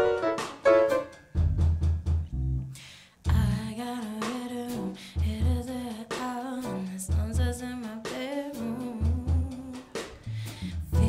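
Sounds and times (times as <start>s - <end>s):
grand piano: 0.0s - 1.6s
drum kit: 0.0s - 11.0s
electric bass guitar: 1.4s - 3.7s, 10.3s - 11.0s
person singing: 3.3s - 11.0s.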